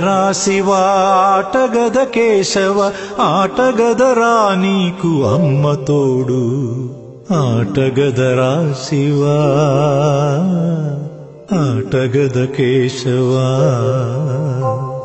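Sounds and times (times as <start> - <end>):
person singing devotional song: 0.0 - 15.0.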